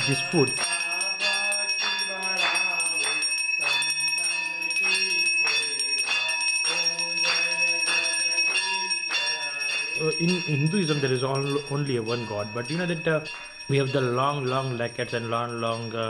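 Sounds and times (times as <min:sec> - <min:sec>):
man chanting: 0:00.0 - 0:03.2, 0:06.8 - 0:16.0
hand bell ringing: 0:00.0 - 0:16.0.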